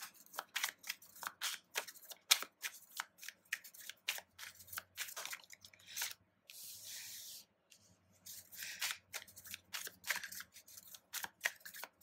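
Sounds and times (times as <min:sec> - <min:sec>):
cards being shuffled: 0:00.0 - 0:06.6, 0:08.3 - 0:12.0
cards rustling together: 0:00.0 - 0:07.1, 0:08.3 - 0:12.0.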